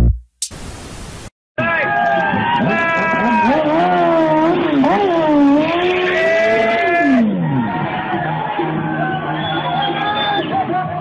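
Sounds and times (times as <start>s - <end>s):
motorcycle engine revving: 2.6s - 7.8s.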